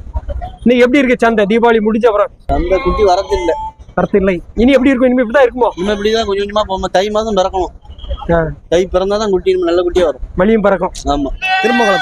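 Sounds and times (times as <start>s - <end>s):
men talking: 0.4s - 12.0s
livestock bleating: 11.4s - 12.0s.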